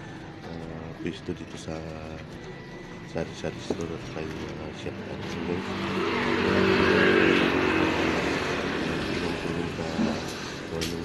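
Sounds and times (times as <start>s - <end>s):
motorcycle engine passing by: 4.6s - 10.8s.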